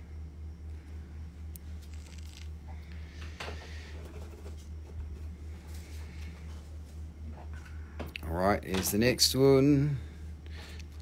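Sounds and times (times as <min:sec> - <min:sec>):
low pulsing hum: 0:00.0 - 0:11.0.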